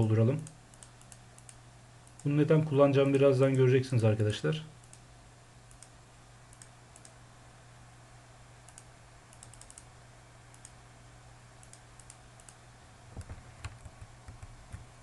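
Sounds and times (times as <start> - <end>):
low steady hum: 0.0 - 15.0
computer mouse clicks: 0.4 - 2.4, 4.8 - 5.1, 5.7 - 7.2, 8.7 - 9.9, 10.5 - 10.8, 11.6 - 12.6.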